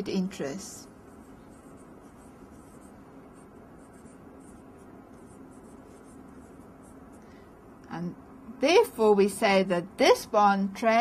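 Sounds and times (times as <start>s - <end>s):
pen scratching while writing: 1.1s - 7.1s.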